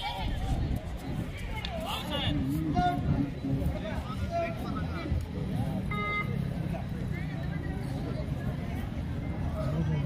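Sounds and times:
mixed voices of players and onlookers: 0.0 - 10.0.

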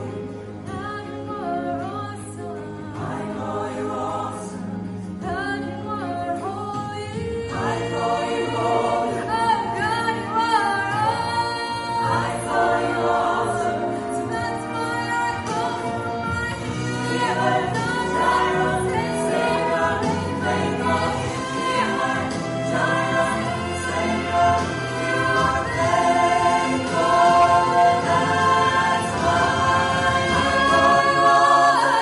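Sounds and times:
mixed choir singing gospel song: 2.4 - 32.0.

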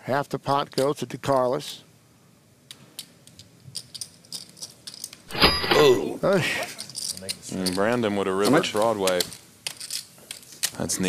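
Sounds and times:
poker chips clicking: 3.0 - 5.2, 9.1 - 10.7.

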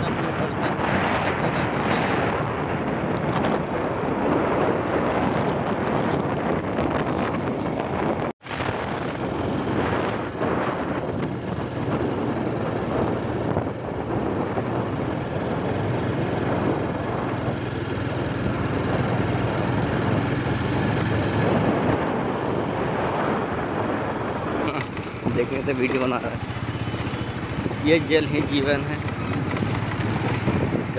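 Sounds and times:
motorcycle engine droning: 0.0 - 30.9
wind noise on microphone: 0.0 - 30.9.

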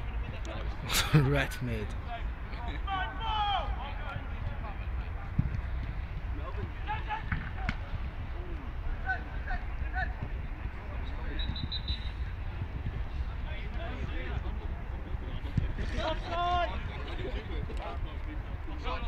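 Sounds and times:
distant players shouting: 2.7 - 4.7, 6.5 - 14.5.

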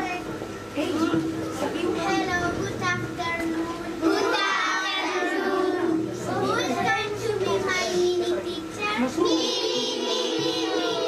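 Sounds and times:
young children singing: 4.0 - 8.4, 9.2 - 11.0.

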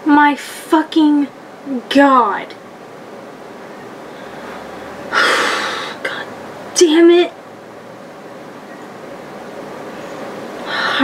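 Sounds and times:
woman sighing: 5.1 - 6.2.

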